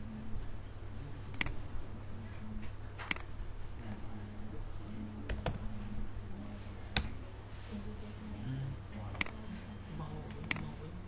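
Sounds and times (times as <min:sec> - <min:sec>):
computer mouse clicks: 0:01.3 - 0:01.6, 0:03.0 - 0:03.3, 0:09.1 - 0:09.4, 0:10.3 - 0:10.7.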